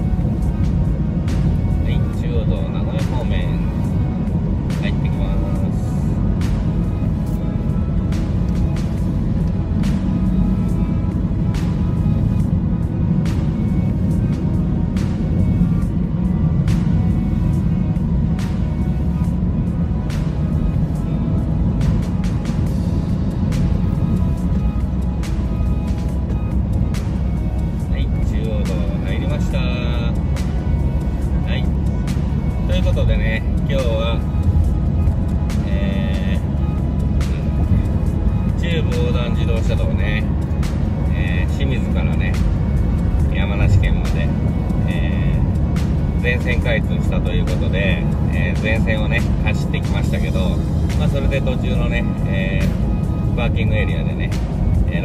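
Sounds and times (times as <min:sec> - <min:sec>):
car road and engine noise: 0:00.0 - 0:55.0
music playing: 0:00.0 - 0:55.0.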